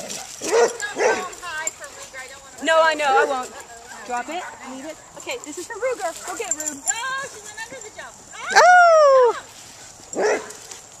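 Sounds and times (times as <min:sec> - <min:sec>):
dog barking: 0:00.1 - 0:01.4, 0:10.2 - 0:10.6.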